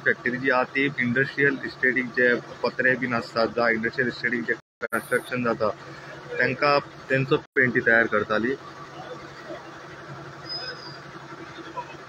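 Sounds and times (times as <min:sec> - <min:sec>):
thin high whistle: 0:10.4 - 0:11.0.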